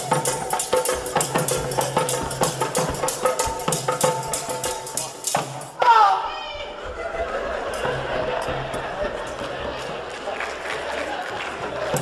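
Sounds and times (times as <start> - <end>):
fast drumming: 0.0 - 5.8
held instrumental tone: 0.0 - 5.8.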